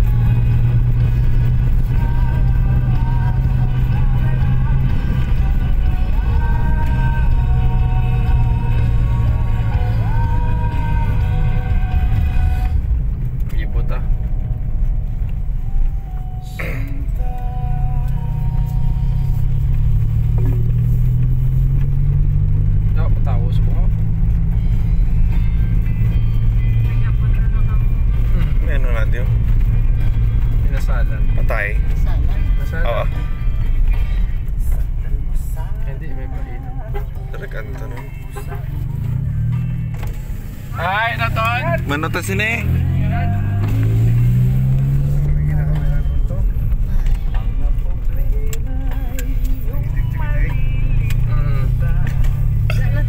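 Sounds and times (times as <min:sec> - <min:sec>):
car engine and road rumble: 0:00.0 - 0:53.0
music playing: 0:00.0 - 0:53.0.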